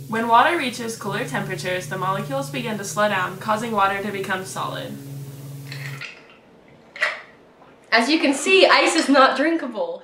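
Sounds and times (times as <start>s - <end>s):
steady low hum: 0.0s - 8.0s.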